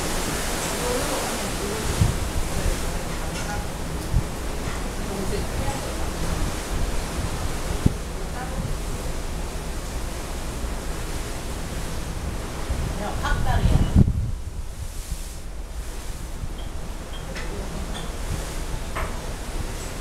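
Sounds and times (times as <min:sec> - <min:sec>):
sea rushing: 0:00.0 - 0:20.0
wind buffeting microphone: 0:00.0 - 0:20.0.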